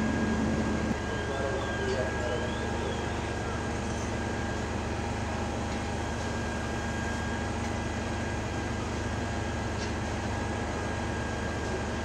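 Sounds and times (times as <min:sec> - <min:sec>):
faint steady whine: 0:00.0 - 0:12.0
low engine drone: 0:00.0 - 0:12.0.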